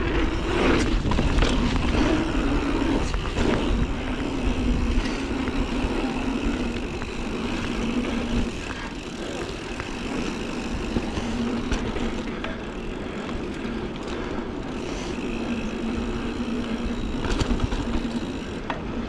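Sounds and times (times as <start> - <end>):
wind rumble on microphone: 0.0 - 9.2
bike rattling: 0.0 - 19.0
bike tyres rolling on dirt: 0.0 - 19.0.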